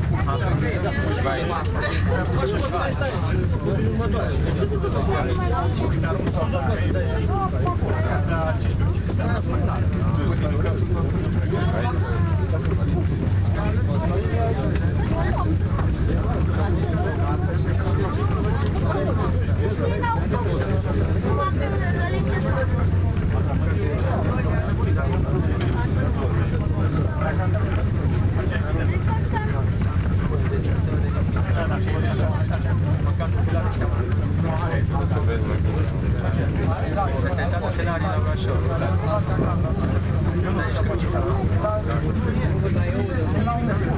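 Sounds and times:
low hum of gondola: 0:00.0 - 0:43.9
people chattering: 0:00.0 - 0:43.9.

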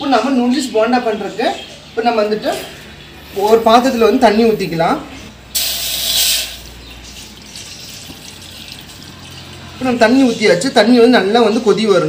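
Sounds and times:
water pouring into metal pot: 0:05.6 - 0:10.1.

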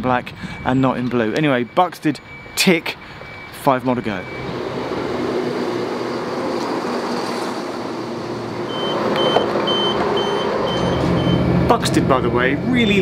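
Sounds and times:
high beeping: 0:00.6 - 0:05.0, 0:08.7 - 0:11.6.

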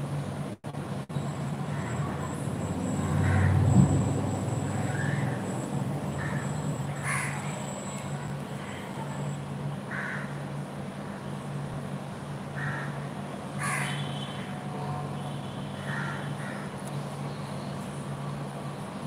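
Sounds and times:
crows cawing: 0:03.2 - 0:03.6, 0:06.1 - 0:07.6, 0:09.9 - 0:10.4, 0:12.6 - 0:14.1, 0:15.8 - 0:16.7.

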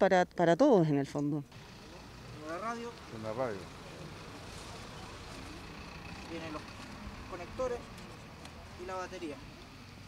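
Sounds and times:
road traffic rumble: 0:01.4 - 0:10.0.

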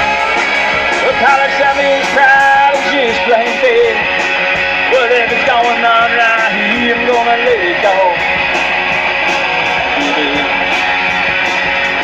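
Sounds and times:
amplified electric guitars: 0:00.0 - 0:12.0
drums with steady beat: 0:00.0 - 0:12.0.

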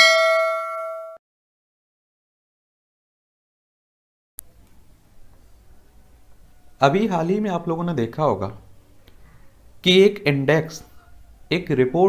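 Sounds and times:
bell-like ding: 0:00.0 - 0:01.2.

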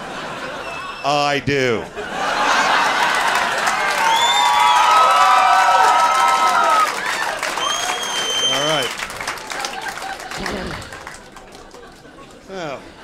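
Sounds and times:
audience applauding and cheering: 0:02.6 - 0:12.7
whoops: 0:03.9 - 0:08.7
whistle: 0:04.0 - 0:04.9, 0:07.5 - 0:08.9.

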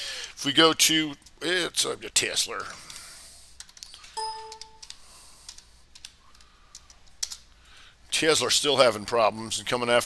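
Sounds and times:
keyboard keystroke clicks: 0:03.6 - 0:07.4
short electronic beep: 0:04.2 - 0:04.8.

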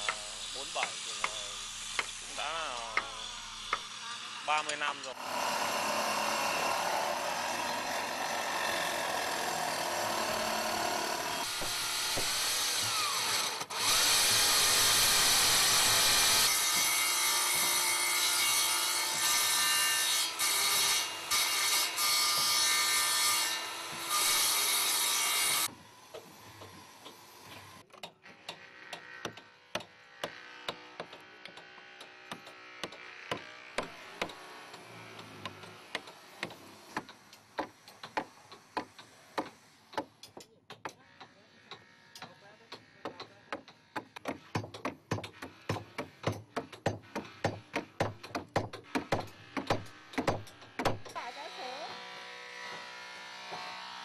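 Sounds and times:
power saw cutting wood: 0:00.0 - 0:40.0, 0:40.8 - 0:54.0
hand tool tapping on wood: 0:00.8 - 0:01.4, 0:34.2 - 0:51.1.

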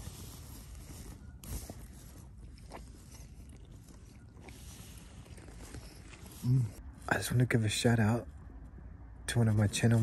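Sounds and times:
candy chewing crunches: 0:01.4 - 0:06.8.

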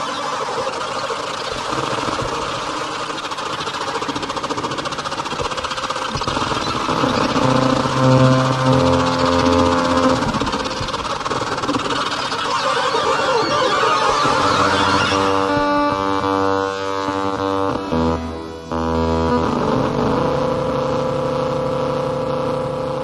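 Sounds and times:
rippling electronic noise texture: 0:00.0 - 0:23.0
steady low tones: 0:04.1 - 0:23.0.

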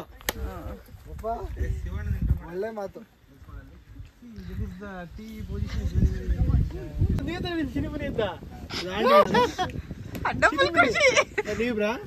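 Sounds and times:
group talking casually: 0:00.0 - 0:12.0
low rumbling microphone noise: 0:00.0 - 0:12.0.

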